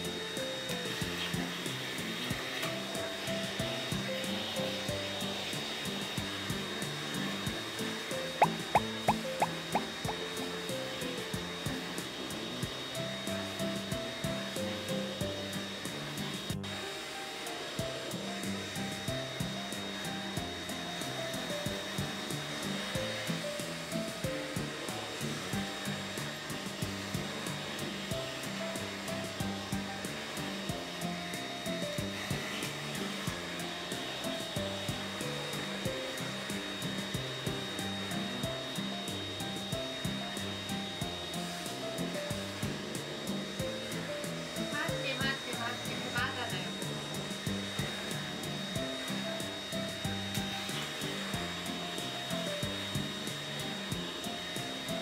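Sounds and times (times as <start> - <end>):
background music with steady beat: 0.0 - 55.0
grooming vacuum high whine: 0.0 - 55.0.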